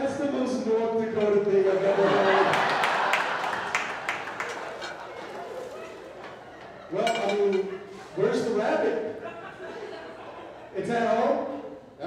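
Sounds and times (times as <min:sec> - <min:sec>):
audience laughter: 0:01.6 - 0:10.9
scattered clapping: 0:02.4 - 0:06.4.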